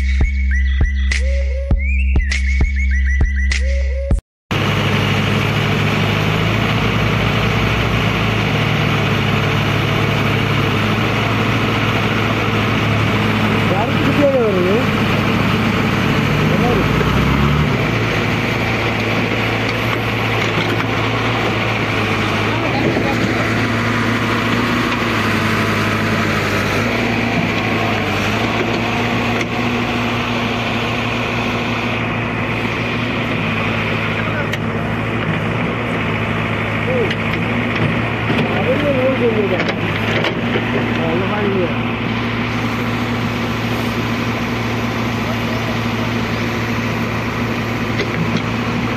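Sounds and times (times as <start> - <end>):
heavy diesel engines running: 4.5 - 48.9.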